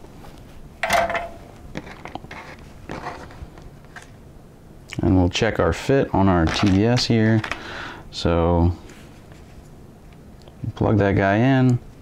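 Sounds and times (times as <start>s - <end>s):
soldering iron clinking into stand: 0.8s - 1.4s
wires and circuit board rustling: 6.1s - 7.6s.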